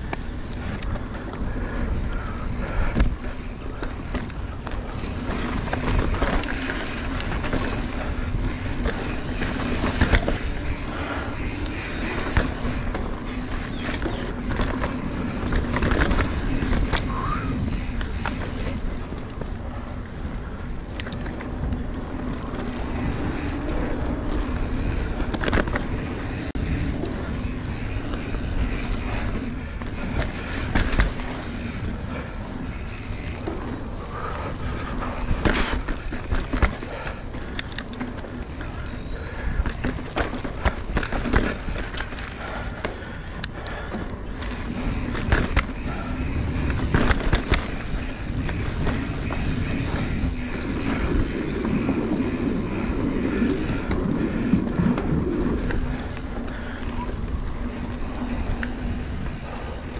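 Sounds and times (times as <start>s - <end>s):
bike clicks and knocks: 0.0s - 59.9s
bike tyres rolling on dirt: 0.0s - 59.9s.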